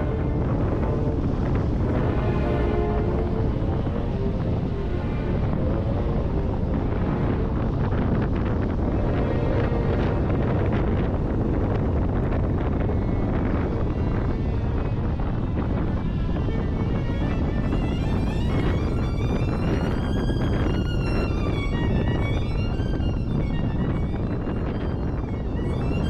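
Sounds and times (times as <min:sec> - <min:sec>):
background music with held notes: 0:00.0 - 0:26.0
wind buffeting microphone: 0:00.0 - 0:26.0.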